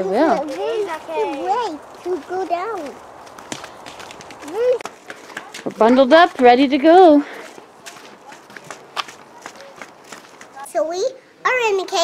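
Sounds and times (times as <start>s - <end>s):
footsteps on a paved path: 0.0s - 10.9s.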